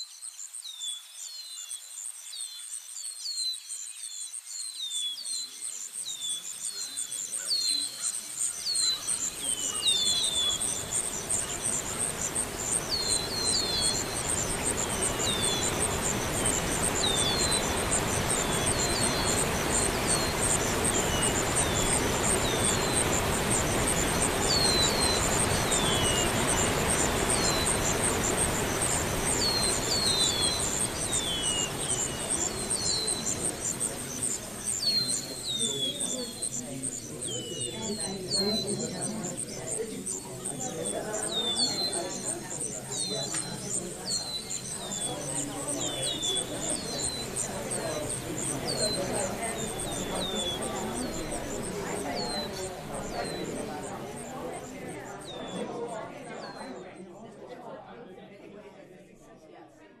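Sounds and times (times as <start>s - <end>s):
insects trilling: 0.0s - 56.6s
birds chirping: 2.4s - 57.0s
steady rushing noise: 8.8s - 37.2s, 41.2s - 54.6s.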